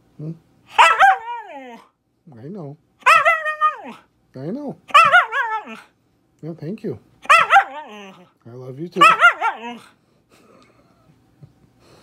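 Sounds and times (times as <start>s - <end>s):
dog yowling: 0.7s - 2.0s, 3.0s - 4.1s, 4.9s - 5.9s, 7.2s - 8.3s, 9.0s - 10.0s.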